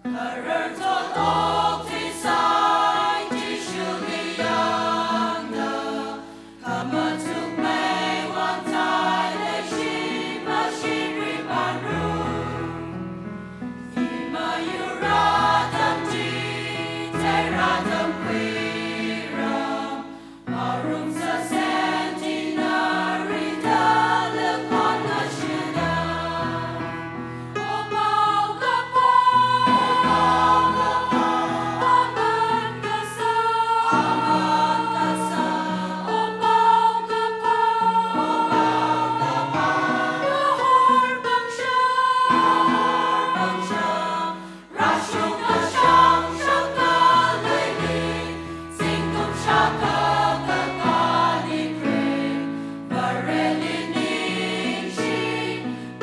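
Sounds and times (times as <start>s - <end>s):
choir singing a hymn: 0.0s - 56.0s.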